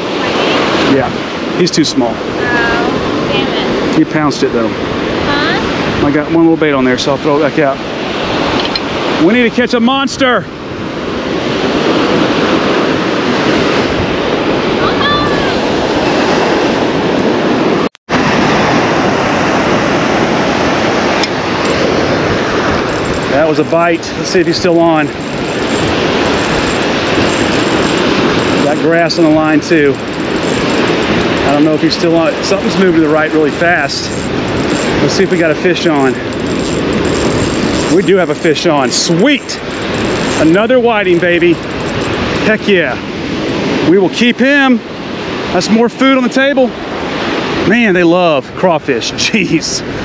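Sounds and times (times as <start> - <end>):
wind on microphone: 0.0 - 47.9
ocean surf breaking: 0.0 - 50.0
fishing reel ratcheting: 22.5 - 42.6.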